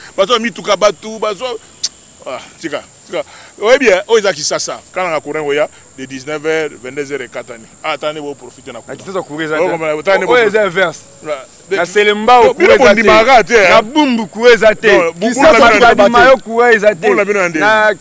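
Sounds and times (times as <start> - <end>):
crickets chirring: 0.0 - 18.0
men talking: 0.0 - 18.0.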